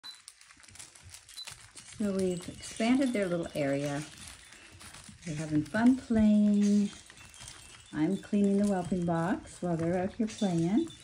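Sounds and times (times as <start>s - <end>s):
puppies scuffling and rustling: 0.1s - 11.0s.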